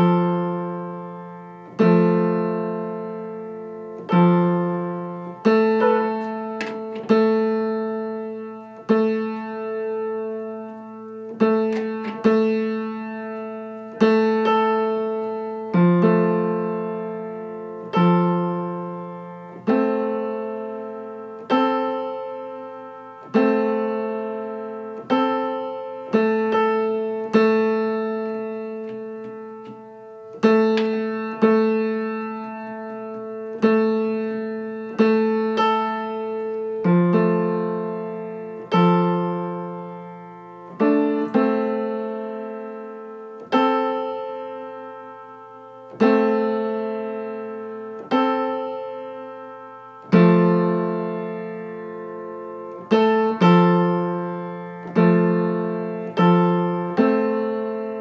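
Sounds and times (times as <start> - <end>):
piano notes ringing: 0.0 - 58.0.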